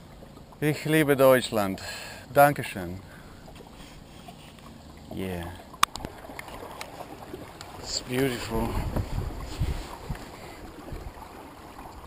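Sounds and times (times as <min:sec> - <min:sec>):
water swishing along wooden hull: 0:00.0 - 0:12.0.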